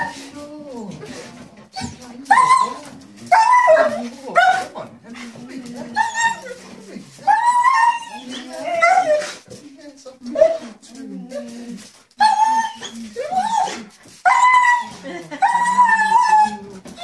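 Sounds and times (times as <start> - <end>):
dog whining and crying: 0.0 - 0.3, 1.7 - 4.7, 5.8 - 9.4, 12.2 - 17.0.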